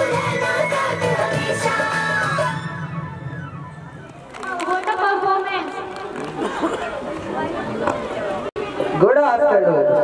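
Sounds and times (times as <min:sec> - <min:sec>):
overlapping voices chatter: 0:00.0 - 0:09.2.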